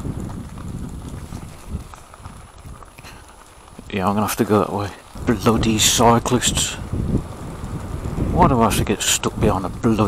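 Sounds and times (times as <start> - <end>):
tyres crunching on gravel: 0.0 - 10.0.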